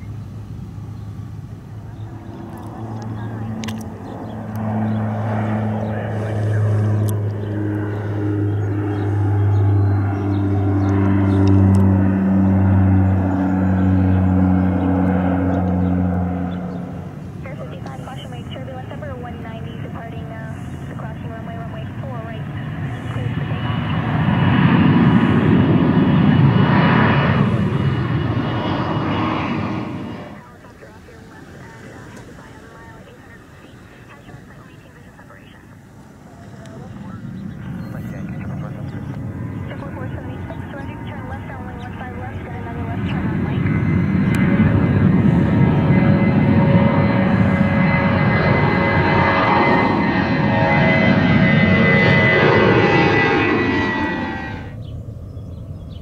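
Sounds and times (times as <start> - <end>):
jet passing with high whine: 0.0 - 56.0
propeller plane engines droning: 0.0 - 56.0.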